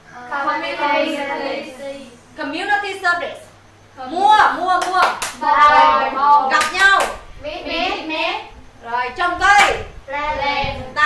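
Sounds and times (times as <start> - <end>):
children reciting in unison: 0.1 - 2.2, 5.3 - 9.4, 10.0 - 11.0
sharp hand claps: 4.8 - 5.4, 6.6 - 7.2, 9.6 - 9.9.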